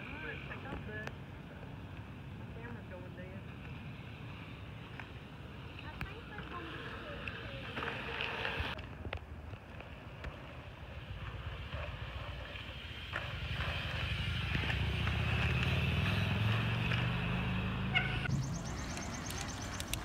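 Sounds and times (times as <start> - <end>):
bike tyres rolling over dirt: 3.6 - 17.2, 18.3 - 20.0.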